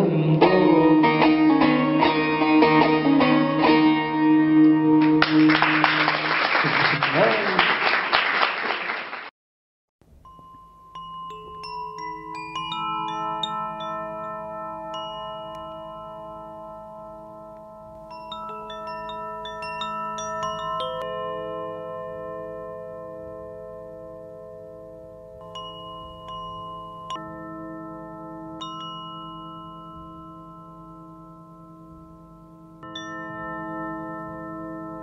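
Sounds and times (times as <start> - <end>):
struck bell-like notes: 10.1 - 35.0.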